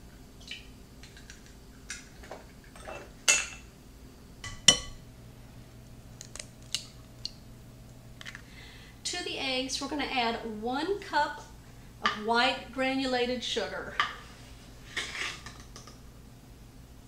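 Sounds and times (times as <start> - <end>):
eggs cracking on bowl: 6.2 - 7.4, 15.4 - 16.0.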